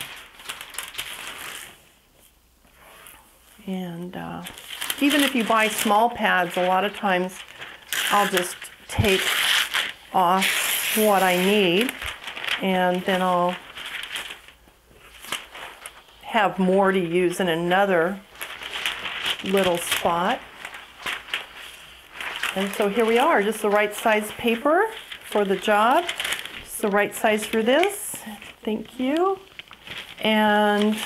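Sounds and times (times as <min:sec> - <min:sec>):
tracing paper rustling: 0:00.0 - 0:03.2, 0:04.3 - 0:31.0.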